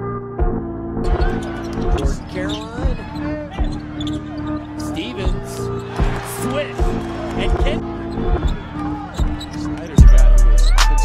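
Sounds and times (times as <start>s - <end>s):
arena crowd noise: 1.1s - 10.8s.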